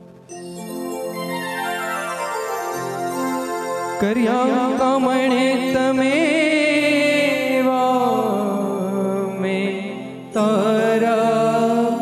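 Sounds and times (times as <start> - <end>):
man singing a hymn: 4.0 - 12.0.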